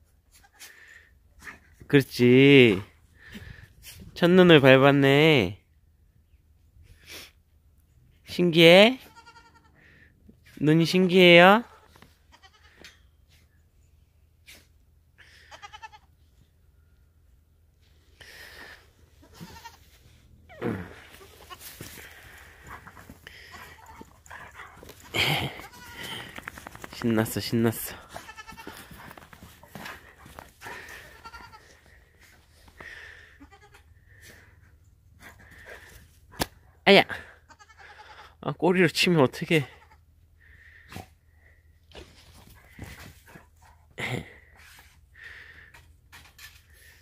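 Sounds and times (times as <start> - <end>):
goat kids bleating: 9.0 - 9.8, 11.7 - 12.9, 15.4 - 16.1, 19.2 - 19.9, 20.5 - 26.4, 27.6 - 29.1, 30.6 - 31.9, 33.2 - 34.0, 37.3 - 38.4
dog panting and sniffing: 22.1 - 25.2, 28.0 - 31.2.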